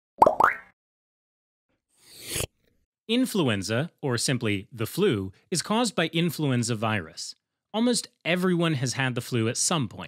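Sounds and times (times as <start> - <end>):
rising plop sound effects: 0.2 - 0.8.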